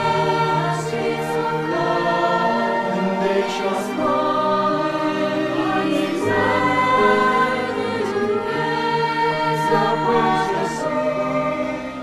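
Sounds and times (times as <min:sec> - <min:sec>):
mixed choir singing a hymn: 0:00.0 - 0:12.0.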